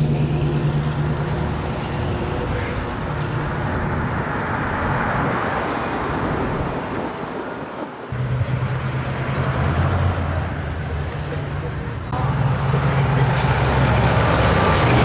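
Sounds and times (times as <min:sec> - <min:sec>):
deep steady engine note: 0:00.0 - 0:03.8
car engines cruising past: 0:00.0 - 0:15.0
road and tyre noise: 0:00.0 - 0:15.0.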